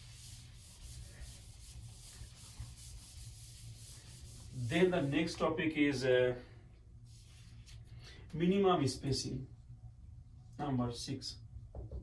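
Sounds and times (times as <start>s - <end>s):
eraser rubbing on whiteboard: 0.0s - 5.4s.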